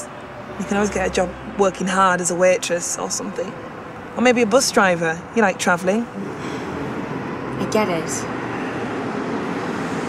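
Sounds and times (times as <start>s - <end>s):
distant vehicle rumble: 0.0s - 10.0s.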